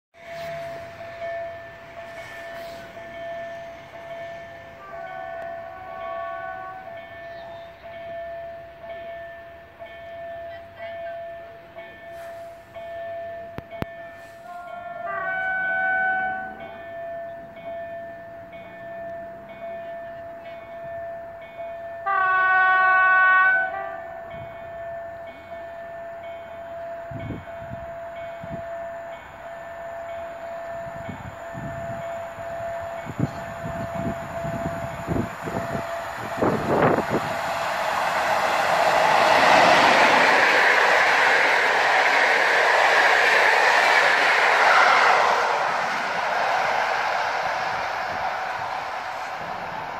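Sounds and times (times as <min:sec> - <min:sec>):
train passing at speed: 0:00.2 - 0:49.9
train horn: 0:04.7 - 0:07.1, 0:14.2 - 0:16.8, 0:22.0 - 0:24.3.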